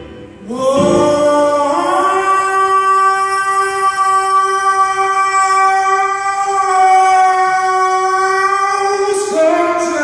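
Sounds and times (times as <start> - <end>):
man singing high note: 0.4 - 10.0.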